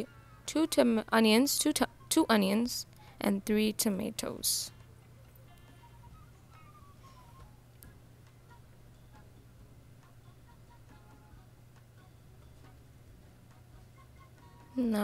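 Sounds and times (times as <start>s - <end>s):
faint background music: 0.0s - 15.0s
low steady hum: 0.0s - 15.0s.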